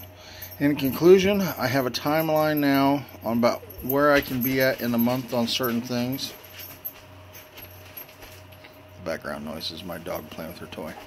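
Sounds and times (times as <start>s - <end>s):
low steady hum: 0.0s - 11.0s
toy jingling and rattling: 0.3s - 8.2s.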